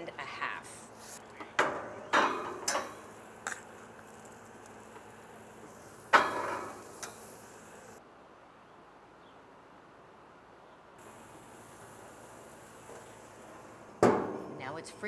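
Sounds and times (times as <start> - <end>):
metal tongs clacking on grill grates: 2.2 - 5.1, 6.1 - 7.3.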